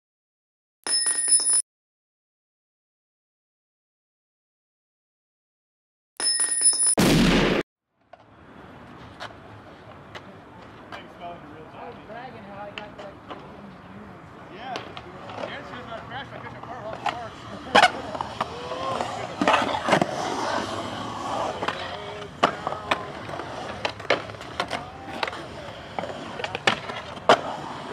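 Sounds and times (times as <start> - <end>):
short loud blast: 7.0 - 7.6
faint outdoor ambience: 7.9 - 27.9
skateboard wheels rolling on concrete: 8.0 - 27.9
skateboard clacks: 14.7 - 27.9.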